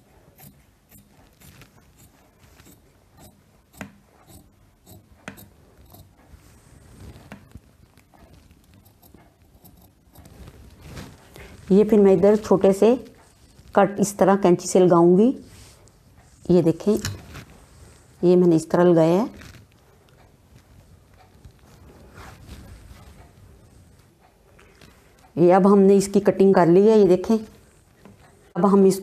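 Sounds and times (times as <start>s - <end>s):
shears snipping fabric: 0.3s - 13.8s
fabric rustling on table: 1.1s - 3.0s, 6.2s - 13.8s, 15.4s - 18.3s, 19.1s - 19.9s, 20.6s - 24.0s.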